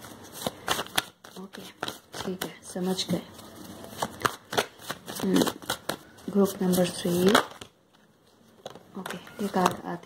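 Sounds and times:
cards being shuffled: 0:00.0 - 0:09.9.

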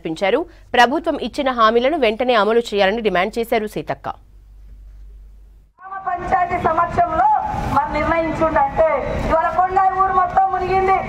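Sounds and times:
steady low hum: 0:00.0 - 0:06.8.

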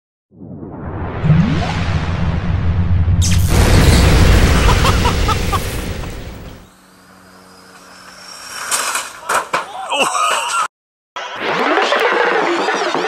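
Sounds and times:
loud boom with low rumble: 0:00.4 - 0:06.7
street sound: 0:02.1 - 0:06.7.

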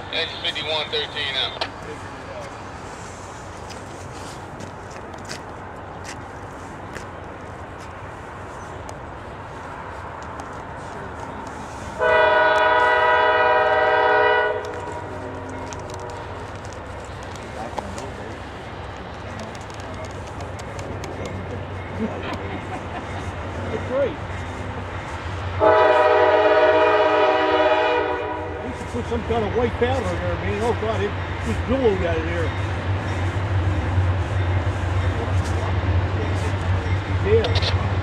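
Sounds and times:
diesel locomotives rumbling: 0:00.0 - 0:38.0
locomotive air horn blast: 0:11.9 - 0:15.2, 0:25.6 - 0:28.8.

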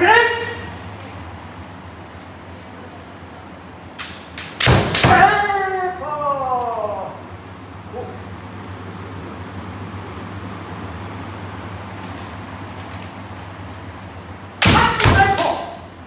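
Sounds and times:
person shouting: 0:00.0 - 0:00.7, 0:05.0 - 0:07.3, 0:14.6 - 0:15.9
low room hum: 0:00.0 - 0:16.0.

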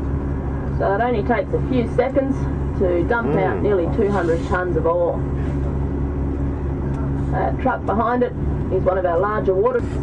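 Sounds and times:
large vehicle engine running: 0:00.0 - 0:10.0.

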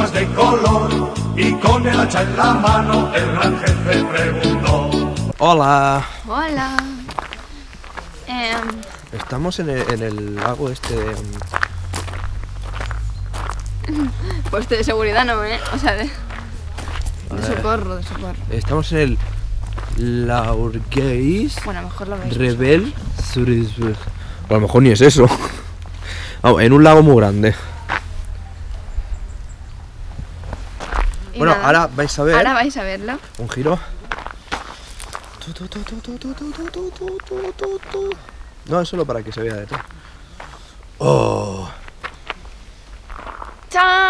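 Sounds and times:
footsteps on gravel: 0:05.9 - 0:28.8, 0:30.3 - 0:44.0
low microphone rumble: 0:09.0 - 0:38.6
person speaking: 0:13.8 - 0:19.2, 0:31.3 - 0:32.6, 0:35.4 - 0:38.2, 0:41.0 - 0:41.8.

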